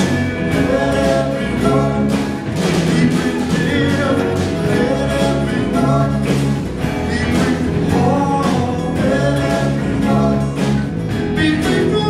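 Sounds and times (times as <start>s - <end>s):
acoustic guitar: 0.0s - 12.0s
drums: 0.0s - 12.0s
electric guitars: 0.0s - 12.0s
voices singing: 0.0s - 12.0s.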